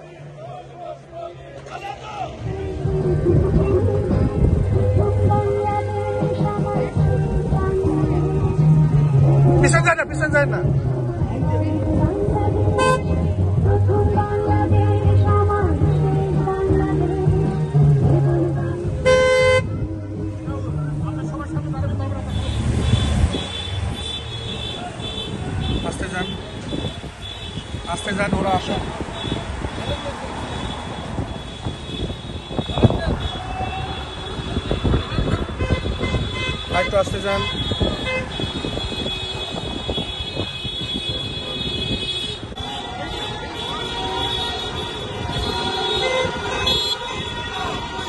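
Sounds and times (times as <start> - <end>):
car engines and road noise: 0.0 - 48.0
voices: 0.0 - 48.0
music: 2.3 - 22.8
car horn toot: 12.8 - 13.1, 19.0 - 19.8, 29.2 - 48.0.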